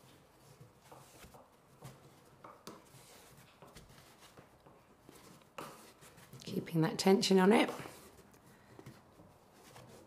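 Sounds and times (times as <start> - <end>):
fabric rustling and brushing ticks: 0.0 - 6.6.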